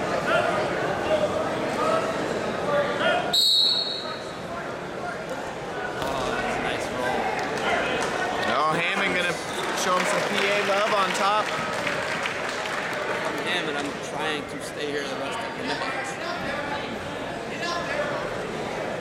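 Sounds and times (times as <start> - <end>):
crowd chatter: 0.0 - 19.0
referee's whistle: 3.4 - 4.3.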